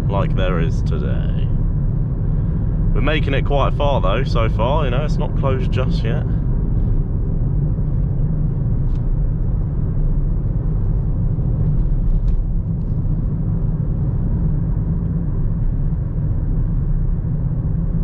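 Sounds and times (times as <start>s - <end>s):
car interior road drone: 0.0s - 18.0s.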